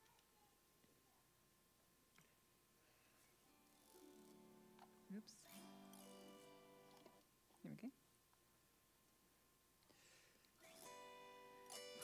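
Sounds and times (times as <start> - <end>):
autoharp ringing chords: 3.5 - 7.0, 10.6 - 12.0.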